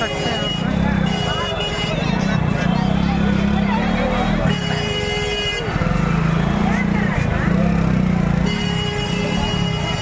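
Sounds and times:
vehicle horn: 0:00.0 - 0:02.2, 0:04.3 - 0:06.0, 0:08.4 - 0:10.0
crowd chatter: 0:00.0 - 0:10.0.

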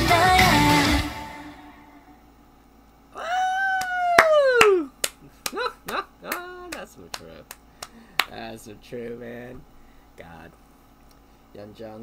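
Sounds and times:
man crying out: 0:03.2 - 0:04.9, 0:05.5 - 0:06.8
sharp hand claps: 0:03.8 - 0:08.4.

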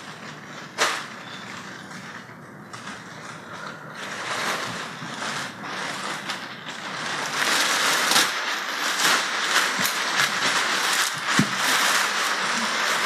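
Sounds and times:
plastic sheeting crinkling: 0:00.0 - 0:13.0.

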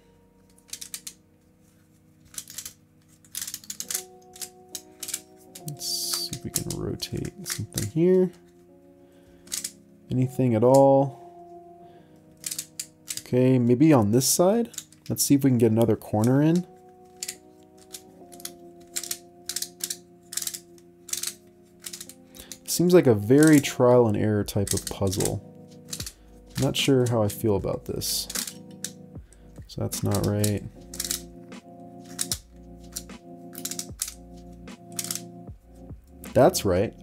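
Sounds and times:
quiet background music: 0:00.0 - 0:37.0
plastic puzzle clicking: 0:00.4 - 0:01.2, 0:02.2 - 0:08.0, 0:09.4 - 0:09.8, 0:12.3 - 0:13.3, 0:14.7 - 0:15.2, 0:15.8 - 0:22.8, 0:23.4 - 0:23.8, 0:24.6 - 0:27.2, 0:28.2 - 0:29.0, 0:30.0 - 0:31.3, 0:32.0 - 0:35.3.

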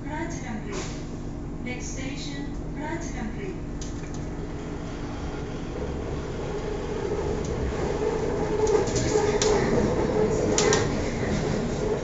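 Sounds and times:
train carriage rumble: 0:00.0 - 0:12.0
train whine: 0:04.3 - 0:12.0.

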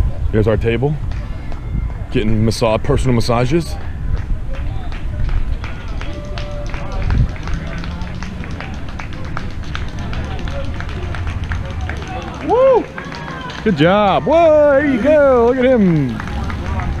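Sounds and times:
faint distant voices: 0:00.0 - 0:17.0
low crowd rumble: 0:00.0 - 0:17.0
man speaking loudly: 0:13.7 - 0:16.2.

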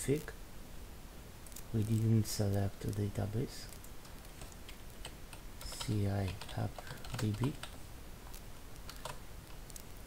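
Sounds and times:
keystrokes on computer keyboard: 0:04.0 - 0:09.9.

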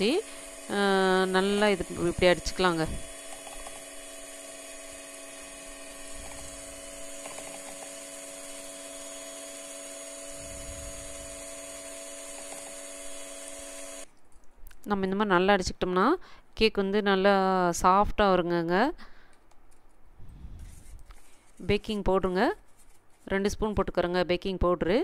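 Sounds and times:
electric hand mixer whisking batter: 0:00.0 - 0:14.1.

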